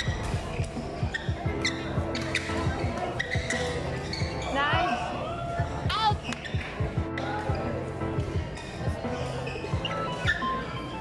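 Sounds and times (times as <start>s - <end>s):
background music: 0.0s - 11.0s
shoes squeaking on court floor: 0.0s - 11.0s.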